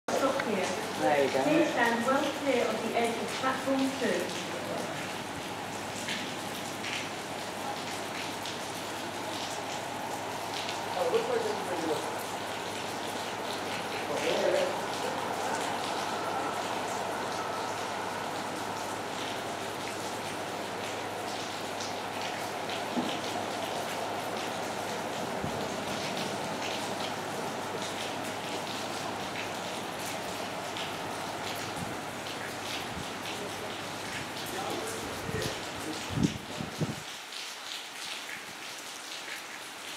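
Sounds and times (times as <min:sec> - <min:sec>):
rain falling steadily: 0:00.0 - 0:39.9
water drips ticking: 0:00.1 - 0:36.3.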